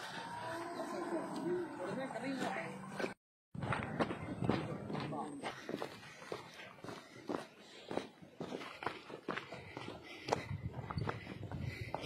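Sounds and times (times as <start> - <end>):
people talking: 0.1 - 5.8
footsteps on loose earth and stones: 2.3 - 12.0.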